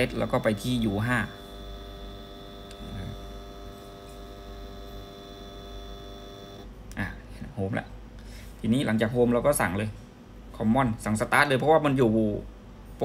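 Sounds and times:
stepper motor whine: 0.0s - 6.7s.

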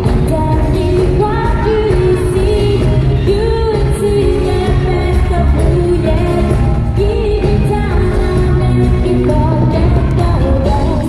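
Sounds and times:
pop backing track with heavy bass: 0.0s - 11.0s
woman singing into microphone: 0.0s - 11.0s.

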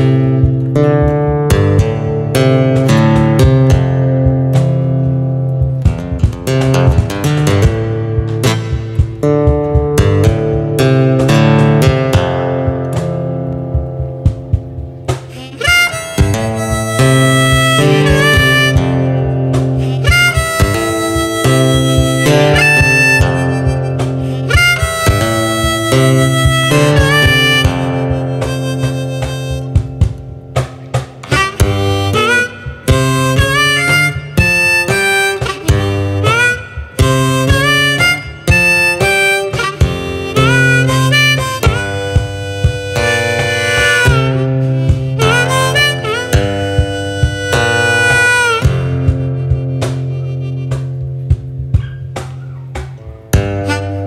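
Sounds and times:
harmonica melody: 0.0s - 52.3s, 53.3s - 54.0s
fingerstyle acoustic guitar: 0.0s - 54.0s
percussive knocks: 0.4s - 35.2s.

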